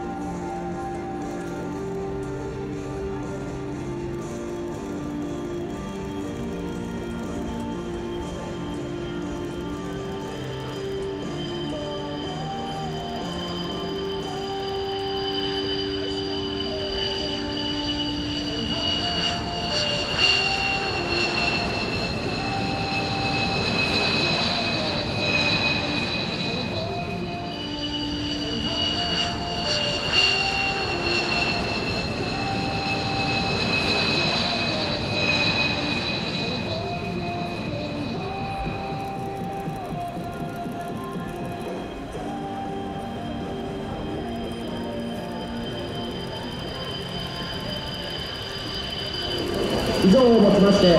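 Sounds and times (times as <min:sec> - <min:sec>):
background music: 0:00.0 - 0:50.9
jet engine whine and roar: 0:00.0 - 0:50.9.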